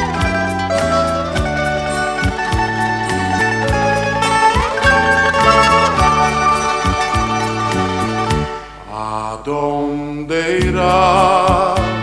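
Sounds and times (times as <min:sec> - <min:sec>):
band accompaniment: 0:00.0 - 0:08.9
man singing a slow ballad: 0:09.0 - 0:12.0.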